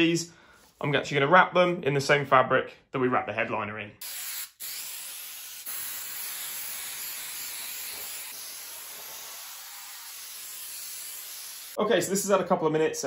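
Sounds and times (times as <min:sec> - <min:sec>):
aerosol can spraying: 0:04.0 - 0:11.8.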